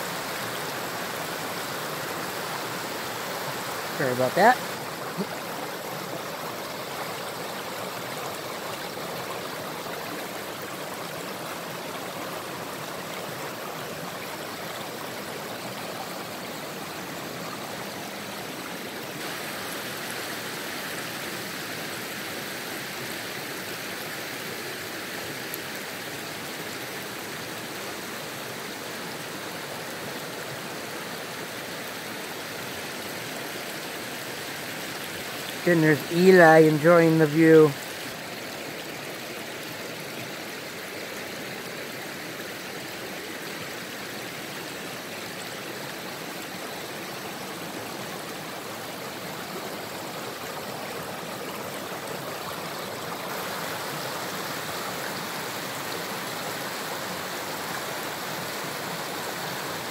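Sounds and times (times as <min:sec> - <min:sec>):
river rushing over rapids: 0:00.0 - 0:59.9.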